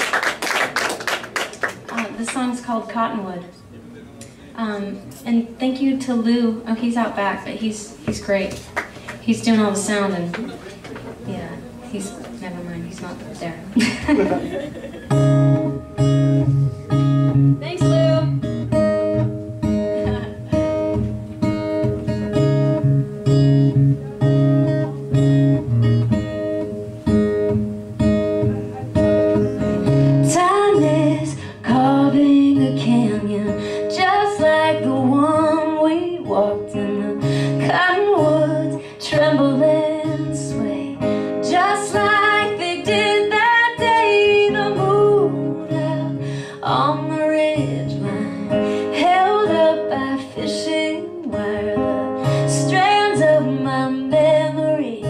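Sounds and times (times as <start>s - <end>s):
acoustic guitar picked chords: 14.0s - 55.0s
guitar melody with bends: 14.5s - 55.0s.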